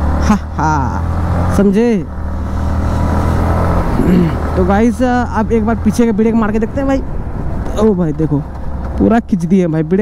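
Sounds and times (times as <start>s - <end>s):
motorcycle engine accelerating: 0.0s - 8.9s.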